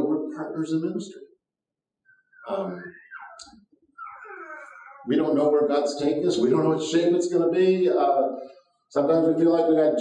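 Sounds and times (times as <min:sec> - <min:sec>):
person murmuring softly: 0:02.3 - 0:05.4.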